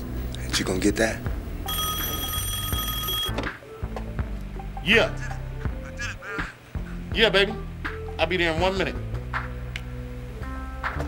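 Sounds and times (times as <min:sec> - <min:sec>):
low music: 0:00.0 - 0:11.0
telephone ringing: 0:01.6 - 0:03.4.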